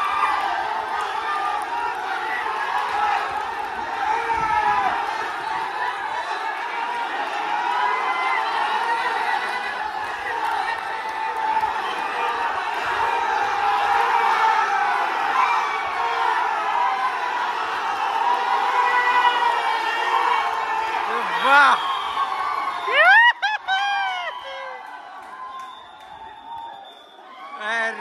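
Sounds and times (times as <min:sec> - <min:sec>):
crowd of men shouting and cheering: 0:00.0 - 0:28.0.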